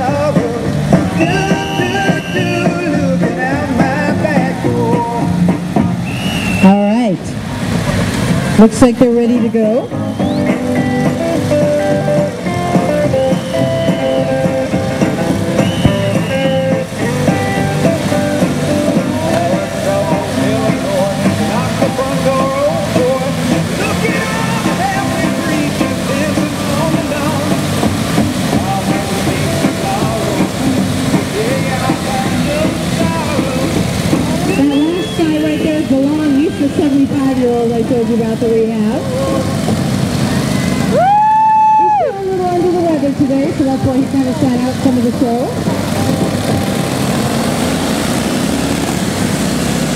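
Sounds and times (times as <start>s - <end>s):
music over loudspeakers: 0.0s - 49.9s
motorcycle engines running: 7.3s - 49.9s.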